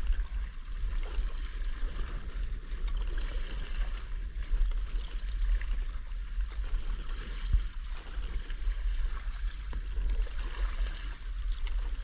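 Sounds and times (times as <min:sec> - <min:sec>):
constant low rumble: 0:00.0 - 0:12.0
paddle splashing and dripping water: 0:00.0 - 0:12.0.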